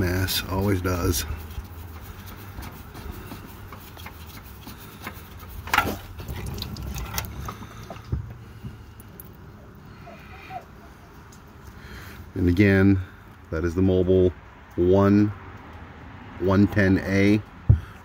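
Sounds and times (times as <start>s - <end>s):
oil filter being unscrewed: 0.4s - 9.5s
oil running out: 1.4s - 9.5s.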